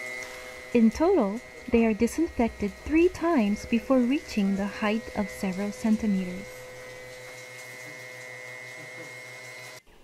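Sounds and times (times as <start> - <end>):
electric machine humming: 0.0 - 10.0.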